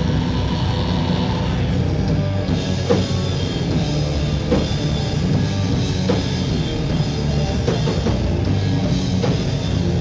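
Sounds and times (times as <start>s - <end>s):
distorted guitar drone: 0.0s - 10.0s
heavy rock band playing live: 0.0s - 10.0s.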